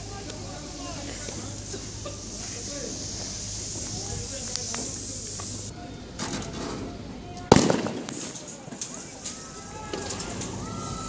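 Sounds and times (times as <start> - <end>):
sharp explosive bang: 7.5 - 8.5.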